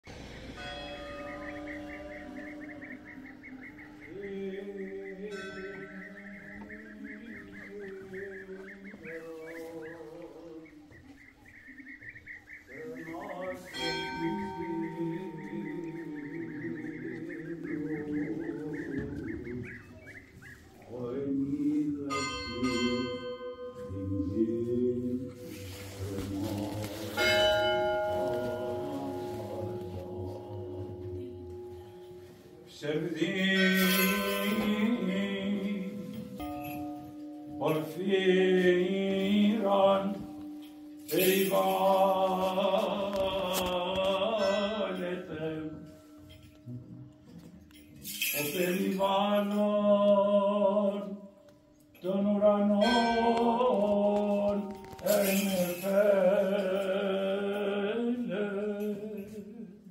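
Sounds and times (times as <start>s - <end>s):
church bell ringing: 0.1s - 20.3s, 21.8s - 49.8s, 50.8s - 59.6s
faint chanting: 0.1s - 59.9s
small bird chirping: 1.2s - 21.6s.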